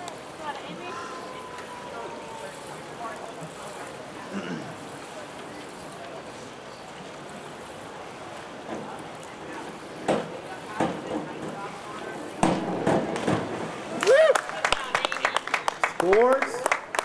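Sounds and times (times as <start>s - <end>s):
people shouting whoops: 1.0s - 2.8s, 14.0s - 14.6s
diving springboard knocking: 12.4s - 14.0s
people clapping: 13.1s - 17.0s.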